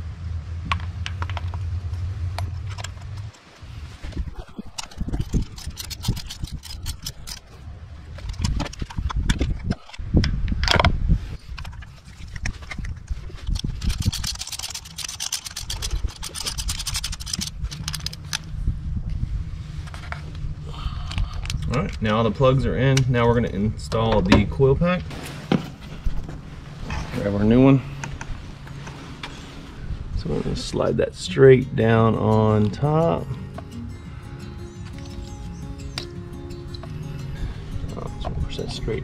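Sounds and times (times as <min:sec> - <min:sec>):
steady low hum: 0:00.0 - 0:39.0
ratchet clicking rapidly: 0:04.7 - 0:07.5, 0:13.5 - 0:18.4.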